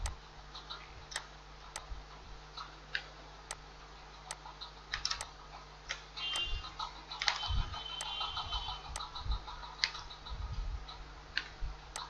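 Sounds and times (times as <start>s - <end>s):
faint steady hum: 0.0s - 12.0s
mouse and keyboard clicks: 4.3s - 5.3s, 7.2s - 8.2s, 11.4s - 12.0s.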